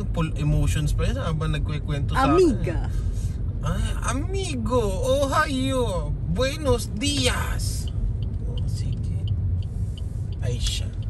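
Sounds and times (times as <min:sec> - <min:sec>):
car road and engine rumble: 0:00.0 - 0:11.0
faint light ticks: 0:07.1 - 0:11.0.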